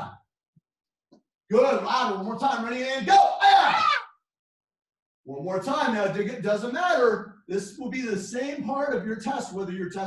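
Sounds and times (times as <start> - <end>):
man shouting a command: 2.9 - 4.0
karate shout: 3.0 - 4.2.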